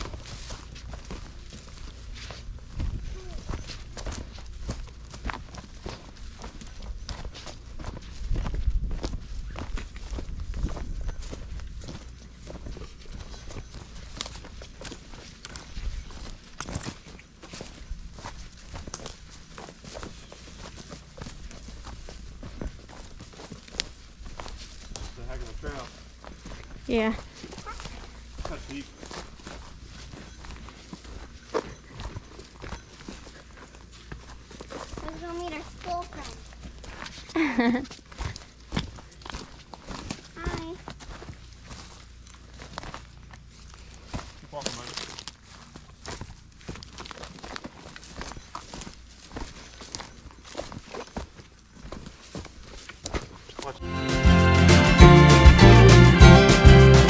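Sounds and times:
footsteps on grass: 0.0 - 57.0.

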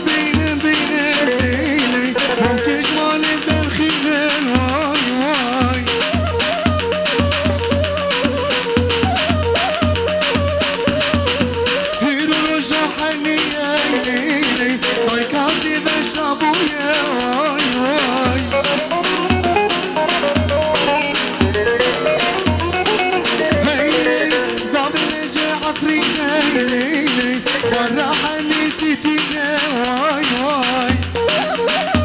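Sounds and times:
deep drum beats: 0.0 - 32.0
fast rattling percussion: 0.0 - 32.0
wavering melody line: 5.7 - 15.0, 31.2 - 32.0.

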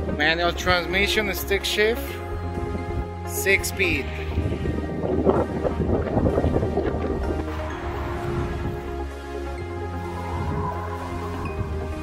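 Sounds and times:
background music with bass: 0.0 - 12.0
wind on microphone: 4.0 - 12.0.

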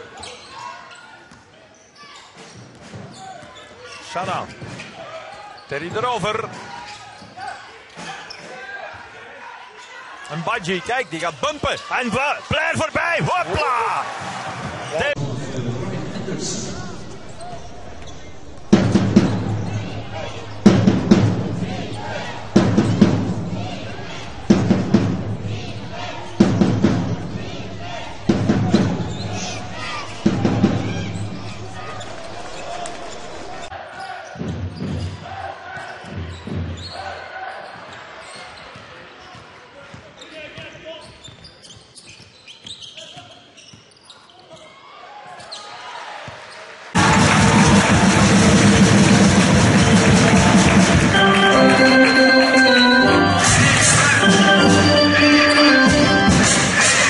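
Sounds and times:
crowd and court noise: 0.0 - 57.0.

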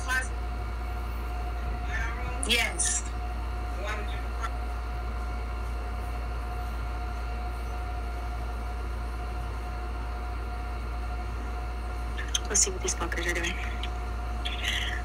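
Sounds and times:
low background hum: 0.0 - 15.0.

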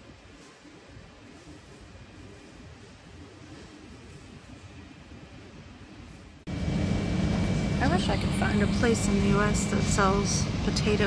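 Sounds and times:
refrigeration low hum: 0.0 - 11.0.

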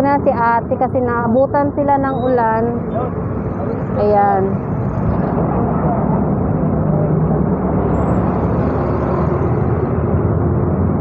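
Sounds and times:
traffic rumble: 0.0 - 11.0
vehicle engines running: 0.0 - 11.0.

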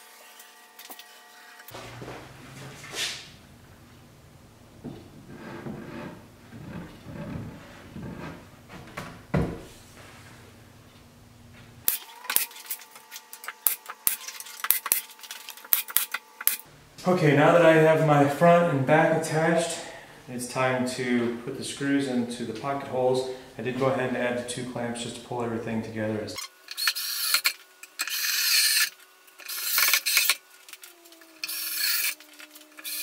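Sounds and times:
dull thumps: 4.8 - 9.7
pneumatic nail gun shots: 26.7 - 30.4.

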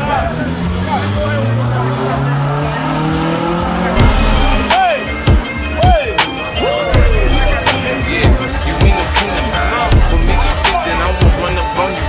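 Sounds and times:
car engine accelerating: 0.0 - 11.5
people talking: 0.0 - 12.0.

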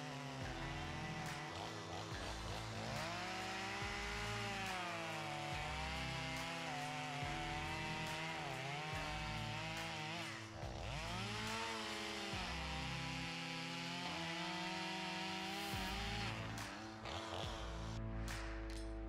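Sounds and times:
chainsaw cutting wood: 0.0 - 19.0.

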